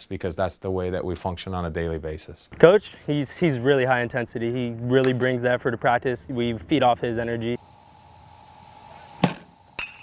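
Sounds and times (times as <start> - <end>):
pitching machine firing baseball: 8.9 - 10.0
metal bat cracking ball: 9.2 - 10.0.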